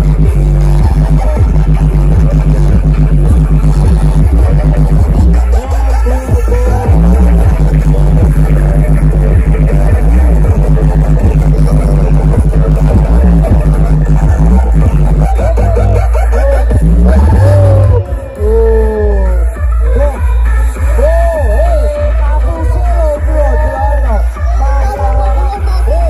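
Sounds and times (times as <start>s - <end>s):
electronic music with heavy bass: 0.0s - 26.0s.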